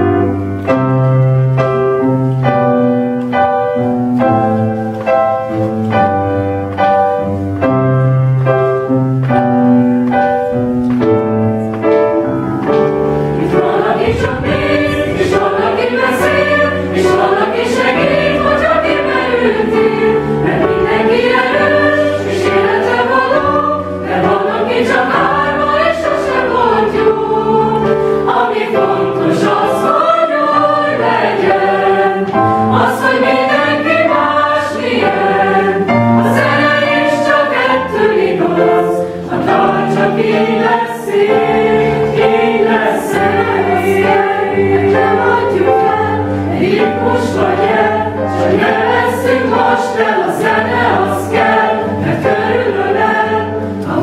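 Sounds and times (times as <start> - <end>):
choir singing in parts: 12.2 - 54.0.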